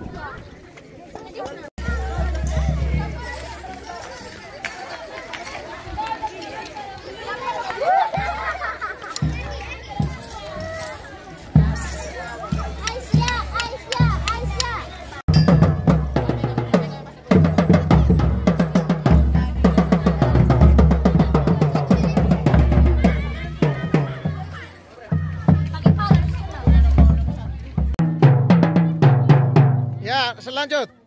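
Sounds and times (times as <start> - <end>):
children chattering: 0.0 - 31.0
marching tenor drums: 15.3 - 30.4.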